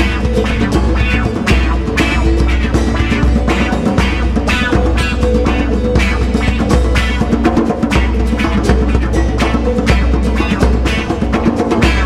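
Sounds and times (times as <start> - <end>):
djembes played by hand: 0.0 - 12.0.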